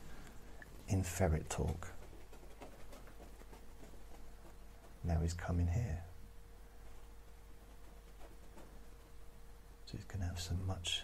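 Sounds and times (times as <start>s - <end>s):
ferret patter and clicking: 0.0s - 6.0s, 6.8s - 9.3s
laptop hum: 0.0s - 11.0s.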